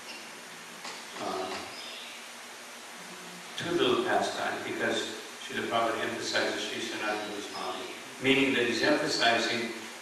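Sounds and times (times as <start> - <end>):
background hiss: 0.0 - 10.0
man saying um: 1.2 - 1.6.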